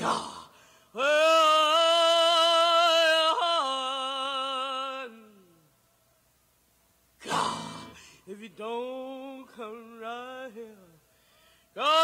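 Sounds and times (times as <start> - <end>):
recorded song: 0.0 - 6.1, 7.2 - 12.0
singer's breathy sigh: 0.3 - 1.0, 11.1 - 11.8.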